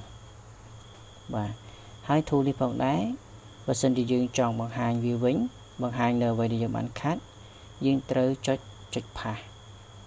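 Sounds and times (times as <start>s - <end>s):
faint high-pitched tone: 0.0s - 7.2s
man speaking: 1.3s - 7.2s, 7.8s - 9.5s.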